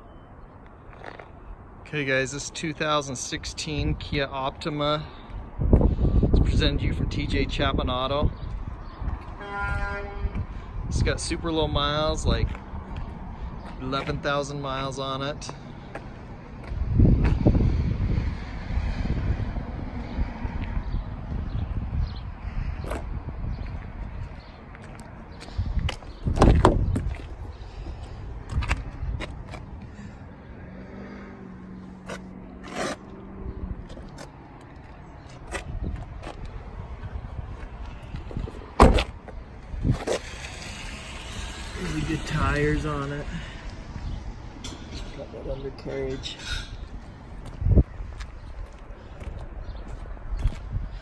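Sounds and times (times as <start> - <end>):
wind rumble on microphone: 5.3 - 13.8, 16.5 - 30.2, 35.4 - 51.0
microphone handling noise: 25.7 - 27.3
car door clicks: 38.8 - 39.2
car doors thumping shut: 38.8 - 39.2.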